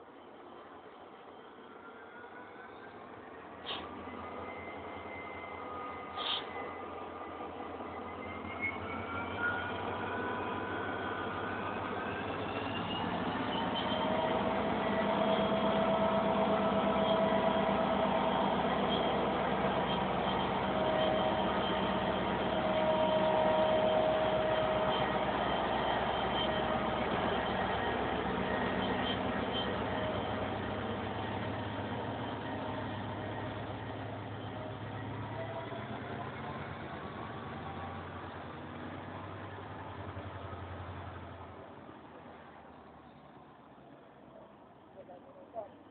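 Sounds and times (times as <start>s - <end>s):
diesel locomotive engine passing: 0.0s - 45.9s
rumble of passenger coaches: 0.0s - 45.9s.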